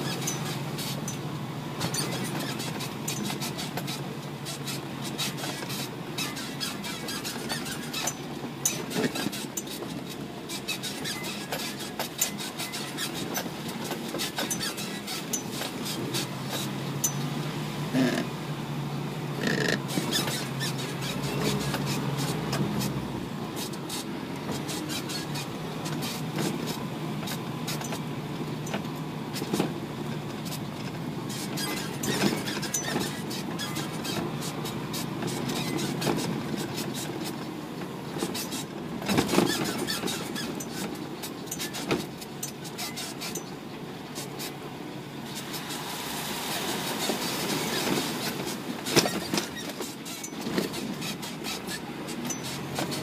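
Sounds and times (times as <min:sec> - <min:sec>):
knocks clicks and squeaks: 0:00.0 - 0:45.9, 0:46.6 - 0:53.0
truck engine hum: 0:00.0 - 0:53.0.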